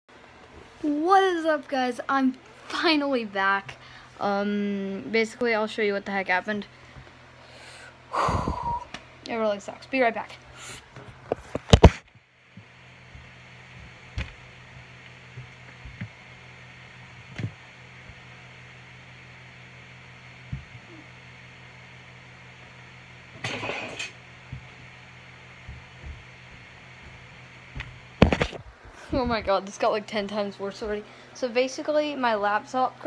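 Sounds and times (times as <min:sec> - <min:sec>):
faint steady hum: 0:00.1 - 0:33.0.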